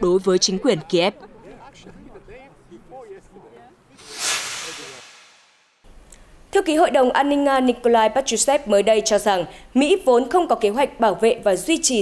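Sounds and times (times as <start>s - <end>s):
whoosh sound effect: 4.0s - 5.8s.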